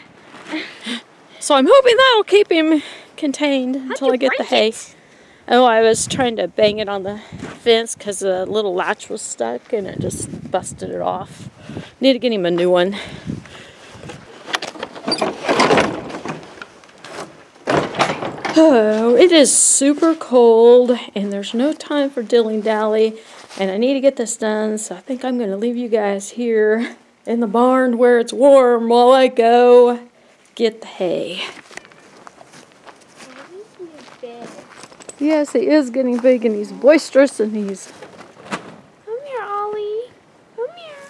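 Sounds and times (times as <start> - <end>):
rustling: 13.0 - 24.2, 31.4 - 40.0
footsteps on dry grass: 31.5 - 38.4.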